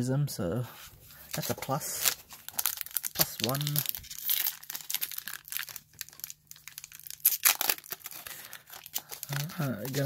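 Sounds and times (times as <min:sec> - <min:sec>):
foil wrapper crinkling and tearing: 0:01.3 - 0:10.0.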